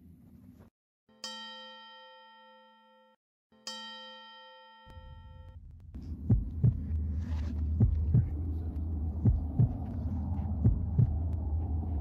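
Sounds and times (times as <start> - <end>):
steady low drone: 4.9 - 12.0
heartbeat thumps: 5.6 - 12.0.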